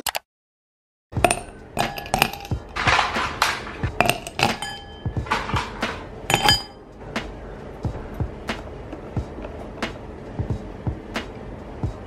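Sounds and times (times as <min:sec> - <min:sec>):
ice cubes clinking into glass: 0:01.2 - 0:06.7
ice cubes rattling: 0:01.3 - 0:04.6.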